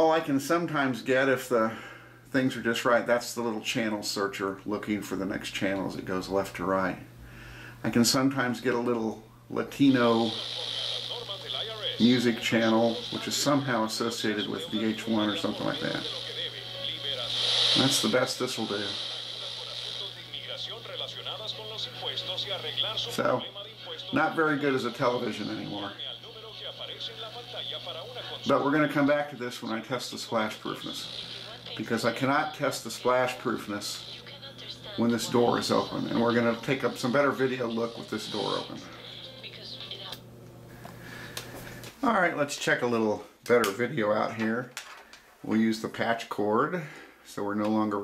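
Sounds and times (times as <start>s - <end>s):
low steady hum: 0.0s - 48.0s
high whine: 9.2s - 41.0s
faint broadcast voice from small speaker: 9.7s - 40.3s.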